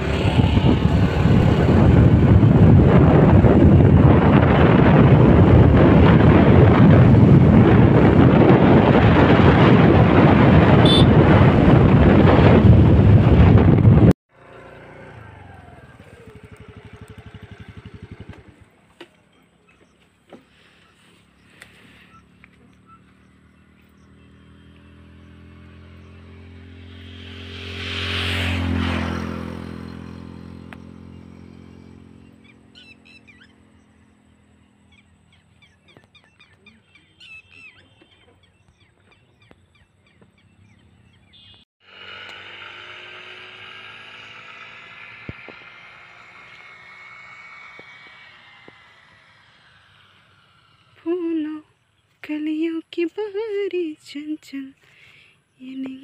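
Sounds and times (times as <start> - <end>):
motor vehicle passing by: 0.0 - 56.0.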